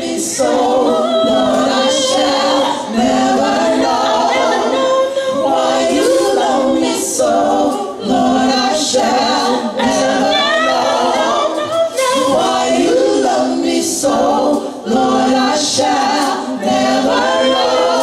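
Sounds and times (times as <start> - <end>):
women singing a cappella: 0.0 - 18.0.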